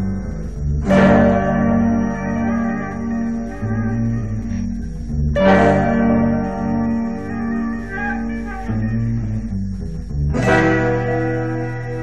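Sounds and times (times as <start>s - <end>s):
loud ringing chord: 0.0s - 9.6s, 10.3s - 12.0s
folk-rock sustained chords: 0.0s - 12.0s.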